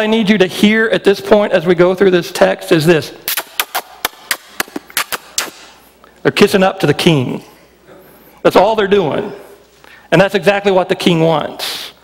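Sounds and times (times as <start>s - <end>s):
kissing smacks into microphone: 3.3s - 5.7s.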